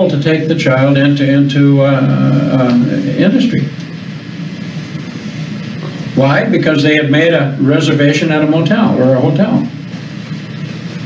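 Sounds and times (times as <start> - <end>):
man speaking: 0.0 - 3.8, 6.2 - 9.8
low hum with hiss: 0.0 - 11.0.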